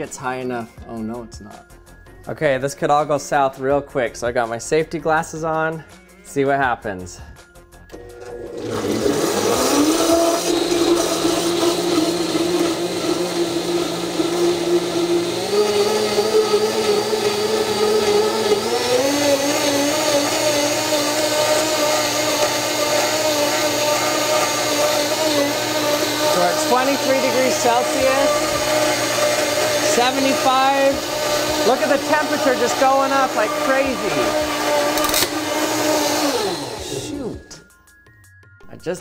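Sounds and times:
blender motor whining: 7.9s - 37.6s.

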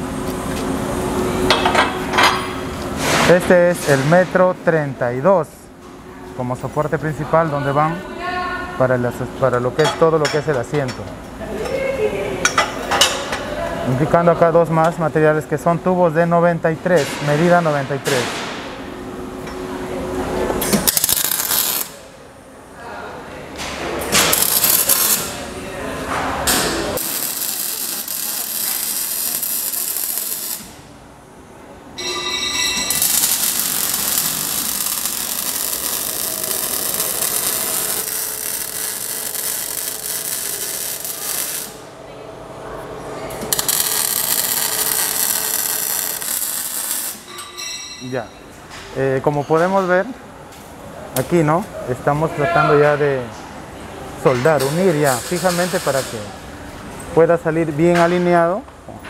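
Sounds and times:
welding arc hissing: 20.8s - 22.0s, 24.2s - 25.5s, 26.9s - 30.9s, 32.9s - 42.0s, 43.5s - 47.3s.

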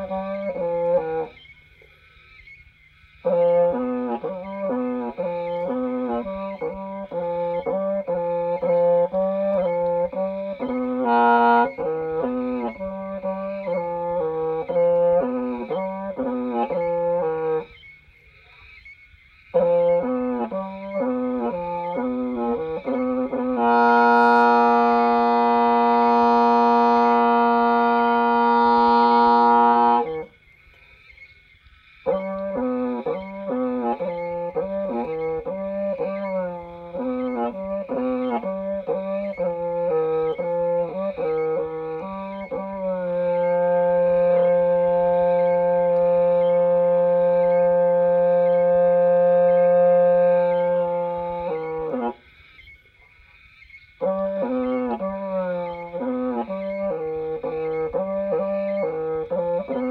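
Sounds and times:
bamboo reed pipe melody: 0.0s - 1.9s, 3.2s - 18.9s, 19.5s - 30.4s, 32.0s - 52.8s, 54.0s - 59.9s.

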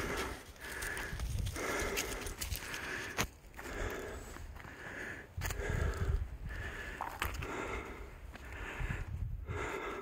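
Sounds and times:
footsteps on rock and dry leaves: 0.0s - 4.8s
person breathing hard: 0.0s - 10.0s.

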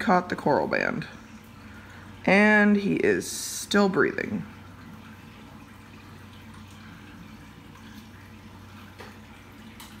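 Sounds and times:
aquarium pump hum: 0.0s - 10.0s
trickling water: 0.0s - 10.0s.

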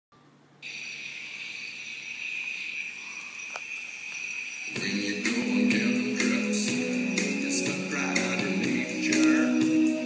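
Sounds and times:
sustained high-pitched tone: 0.6s - 8.0s.

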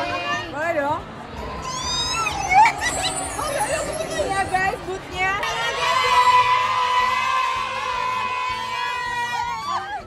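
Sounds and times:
crowd chatter: 0.0s - 10.0s
people talking: 1.7s - 5.8s.

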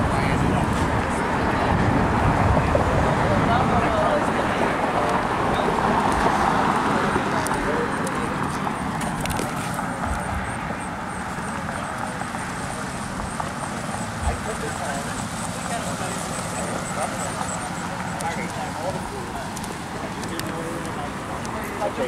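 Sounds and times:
people chattering: 0.0s - 22.0s
steady outdoor noise: 0.0s - 22.0s.

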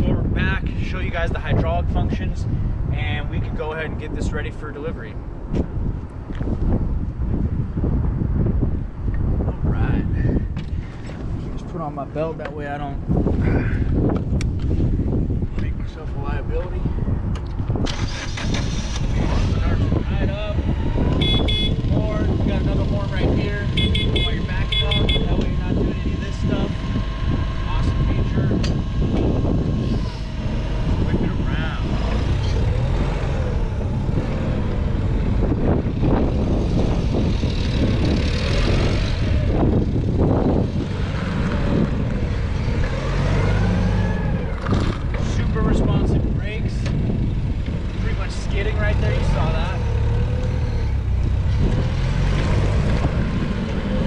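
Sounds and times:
forklift engine running: 20.7s - 22.0s
high beeps: 21.2s - 21.8s.

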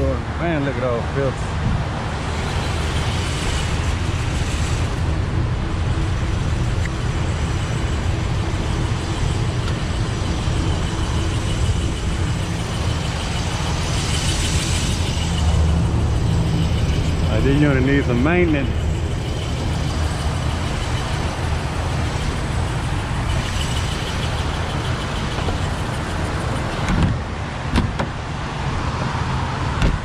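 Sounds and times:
air conditioning unit rushing air: 0.0s - 30.0s.

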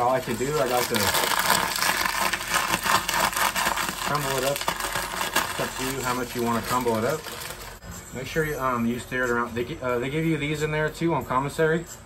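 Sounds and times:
chips crunching: 0.0s - 7.8s
plastic bag crinkling: 0.0s - 7.8s.

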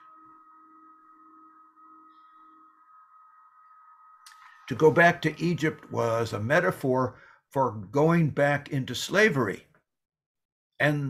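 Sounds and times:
thin high-pitched tone: 0.0s - 7.1s.

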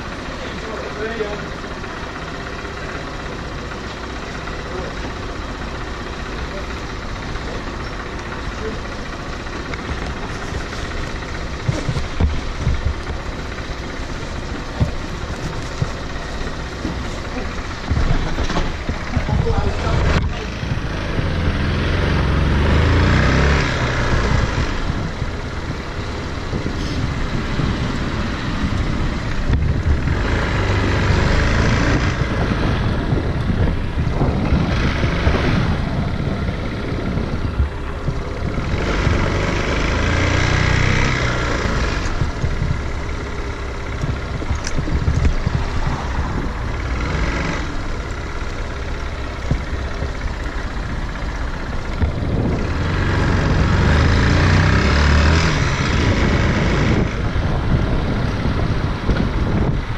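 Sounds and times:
motorcycle engine revving at low speed: 0.0s - 59.9s.

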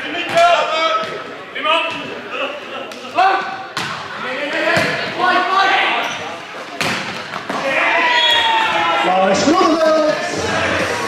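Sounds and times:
players shouting: 7.5s - 11.0s.

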